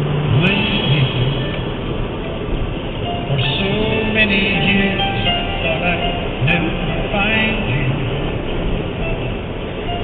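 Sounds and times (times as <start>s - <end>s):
car cabin road rumble: 0.0s - 10.0s
singing from car stereo: 0.1s - 1.8s, 3.0s - 10.0s.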